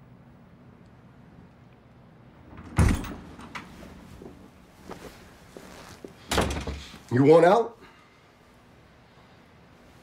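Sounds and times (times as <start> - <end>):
door banging shut: 2.4 - 3.7, 6.3 - 6.9.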